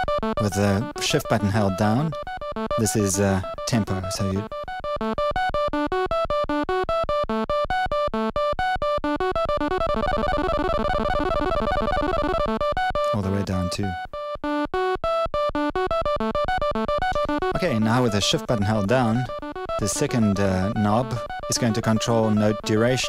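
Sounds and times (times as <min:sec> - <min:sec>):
buzzy synth sequence: 0:00.0 - 0:05.1, 0:09.2 - 0:14.0, 0:15.6 - 0:23.0.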